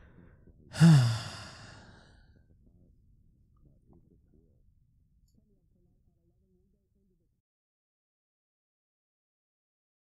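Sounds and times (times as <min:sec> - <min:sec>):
man sighing breathily: 0:00.7 - 0:02.1.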